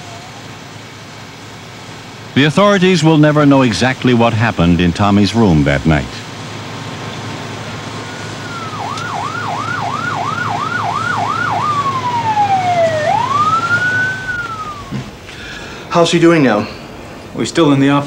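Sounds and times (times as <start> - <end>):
emergency vehicle siren: 0.0 - 3.9, 6.4 - 15.3.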